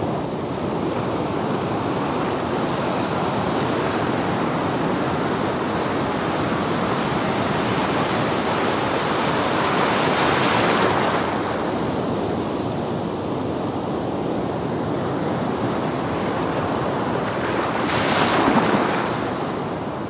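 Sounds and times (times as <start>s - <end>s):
ocean surf washing: 0.0s - 20.0s.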